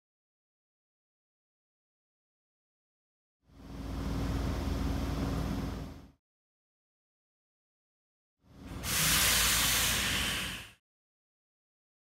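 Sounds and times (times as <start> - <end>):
subway car hiss and rumble: 8.7 - 10.8.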